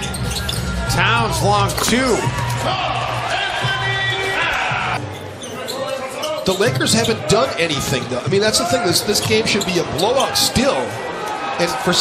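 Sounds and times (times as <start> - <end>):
basketball court sounds: 0.0 - 10.6
crowd noise: 0.0 - 12.0.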